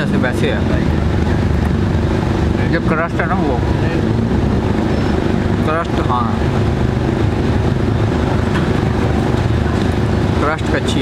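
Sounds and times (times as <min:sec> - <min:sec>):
low engine rumble: 0:00.0 - 0:11.0.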